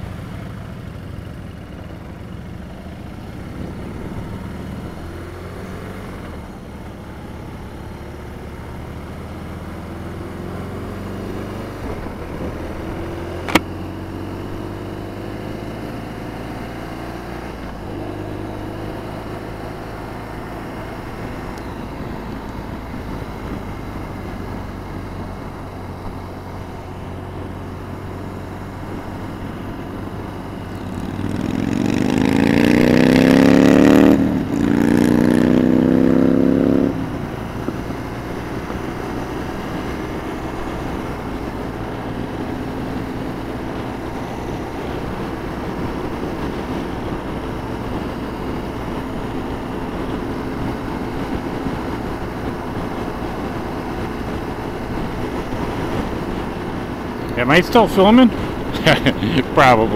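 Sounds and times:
motorcycle engine running: 0:00.0 - 0:59.9
sharp click: 0:13.4 - 0:13.7.

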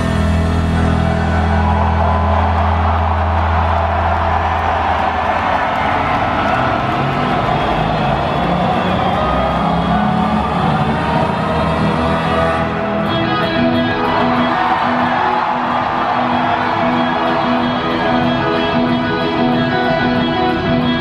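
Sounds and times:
crowd cheering and screaming: 0:00.0 - 0:21.0.

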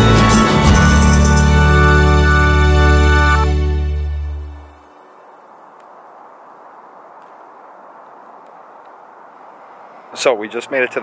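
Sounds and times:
low outdoor rush: 0:04.2 - 0:11.0.

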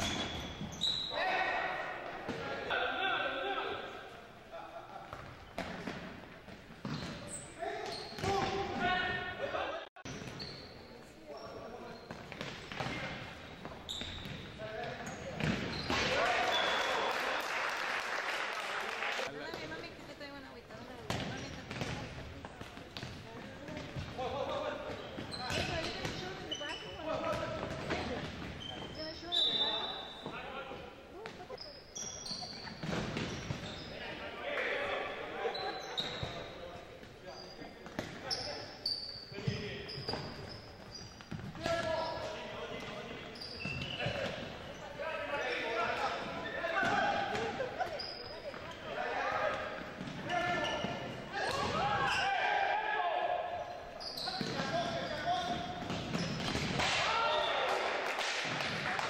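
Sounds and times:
sneaker squeaks: 0:00.0 - 0:02.5, 0:05.1 - 0:09.3, 0:10.0 - 0:17.0, 0:19.5 - 0:34.4, 0:35.0 - 0:52.5, 0:53.6 - 0:57.6
people shouting in a gym: 0:01.1 - 0:03.9, 0:45.2 - 0:47.8, 0:48.8 - 0:55.7, 0:56.8 - 0:59.0.

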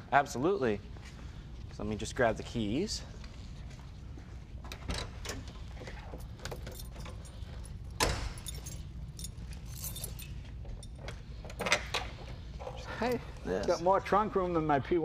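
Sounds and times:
car keys jangling: 0:06.0 - 0:11.2.

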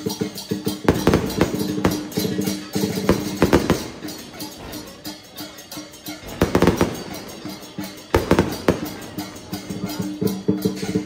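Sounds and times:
loud drum and cymbal strikes: 0:00.0 - 0:11.0
percussion band playing a steady beat: 0:00.0 - 0:11.0.

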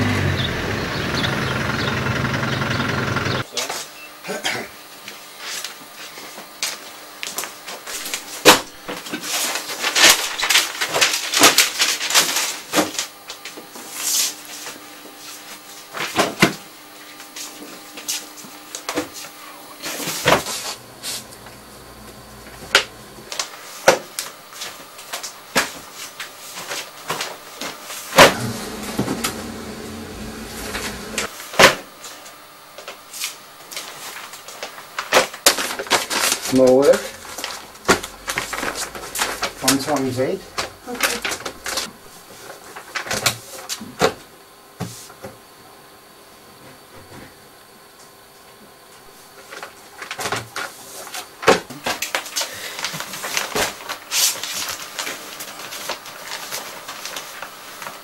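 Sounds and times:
newspapers rustling and slapping: 0:05.4 - 0:14.7, 0:32.8 - 0:43.8, 0:49.4 - 0:58.0.

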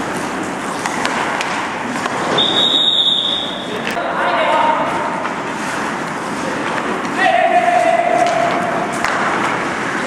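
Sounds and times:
ice rink rushing noise: 0:00.0 - 0:03.4, 0:04.3 - 0:10.0.

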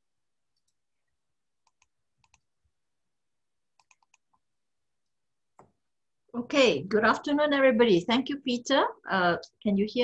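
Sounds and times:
computer mouse clicks: 0:00.5 - 0:00.8, 0:01.6 - 0:02.5, 0:03.7 - 0:05.8.

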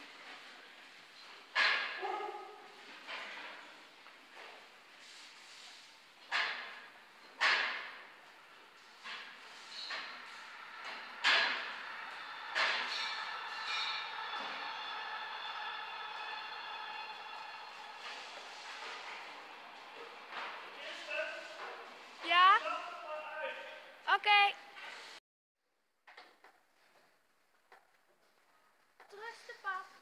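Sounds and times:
long steady drawn-out tone: 0:08.0 - 0:21.7.

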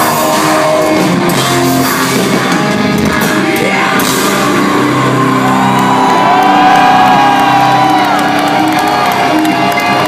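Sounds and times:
crowd cheering and whooping: 0:04.4 - 0:10.0.

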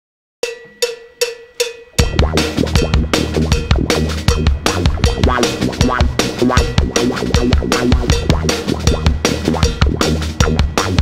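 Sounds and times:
metallic percussion strikes: 0:00.4 - 0:11.0.

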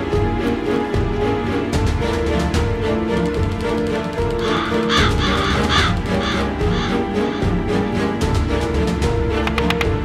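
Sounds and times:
film score low notes: 0:00.0 - 0:10.0
crow cawing: 0:04.4 - 0:07.6.

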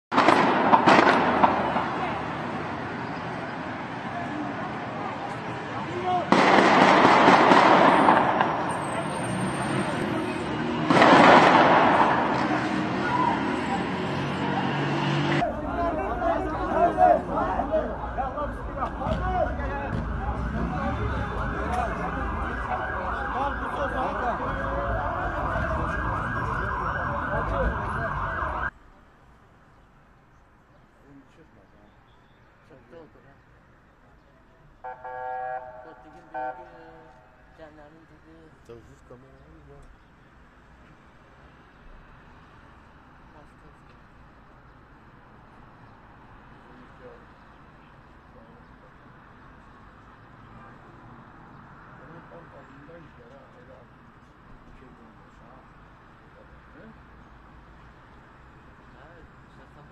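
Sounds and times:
gunshots with echo: 0:00.1 - 0:02.1, 0:06.2 - 0:08.8, 0:10.8 - 0:12.7
street noise: 0:00.1 - 0:59.9
voices: 0:01.4 - 0:06.6, 0:11.8 - 0:28.7, 0:32.6 - 0:40.0
emergency siren yelping: 0:18.3 - 0:28.7.

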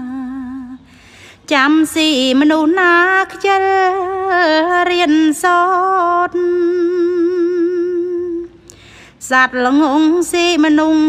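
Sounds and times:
woman chanting unaccompanied: 0:00.0 - 0:00.9, 0:01.5 - 0:08.5, 0:09.2 - 0:11.0.

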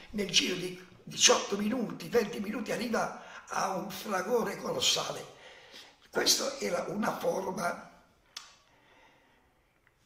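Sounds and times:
faint breath: 0:05.4 - 0:06.1, 0:08.6 - 0:09.8.

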